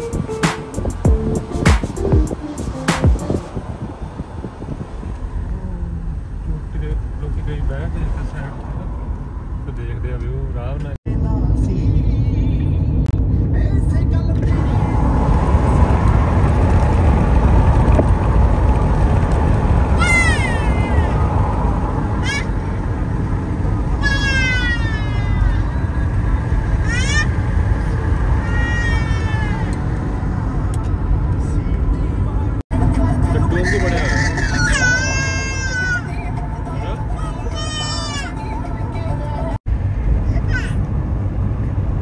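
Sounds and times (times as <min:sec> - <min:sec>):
car road and engine rumble: 0:00.0 - 0:42.0
child crying out: 0:20.0 - 0:21.3, 0:24.0 - 0:25.7, 0:26.8 - 0:27.4, 0:28.4 - 0:29.8, 0:34.0 - 0:36.1, 0:37.4 - 0:38.4.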